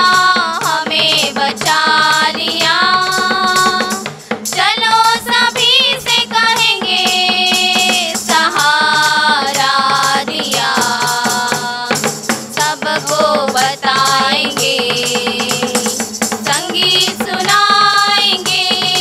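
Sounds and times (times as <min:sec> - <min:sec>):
musical accompaniment with beat: 0:00.0 - 0:19.0
women singing worship song: 0:00.0 - 0:19.0.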